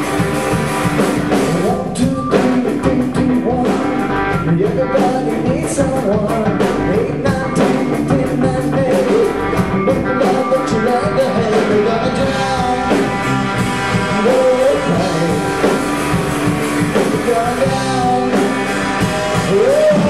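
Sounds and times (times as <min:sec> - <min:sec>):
bass guitar: 0:00.0 - 0:20.0
drum kit beats: 0:00.0 - 0:20.0
electric guitar lead bending: 0:00.0 - 0:20.0.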